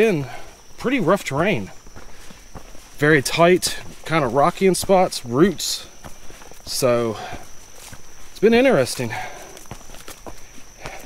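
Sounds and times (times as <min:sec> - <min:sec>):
footsteps on rocky dirt trail: 0:00.0 - 0:11.0.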